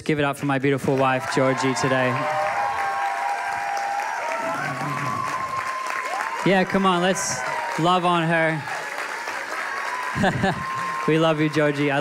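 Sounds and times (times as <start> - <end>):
crowd applauding: 0.3 - 12.0.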